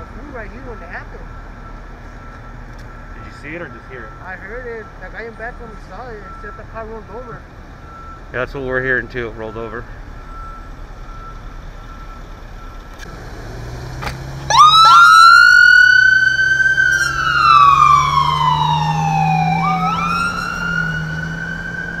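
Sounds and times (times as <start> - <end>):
ambulance engine hum: 0.0 - 22.0
ambulance siren wailing: 14.4 - 22.0.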